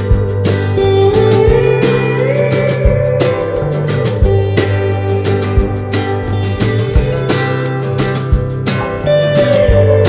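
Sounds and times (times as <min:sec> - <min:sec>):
bass guitar: 0:00.0 - 0:10.0
lap steel guitar sliding: 0:00.0 - 0:10.0
steady drum beat: 0:00.0 - 0:10.0.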